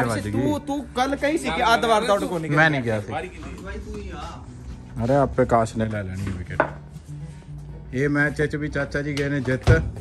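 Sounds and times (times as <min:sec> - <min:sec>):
background music with low bass: 0:00.0 - 0:10.0.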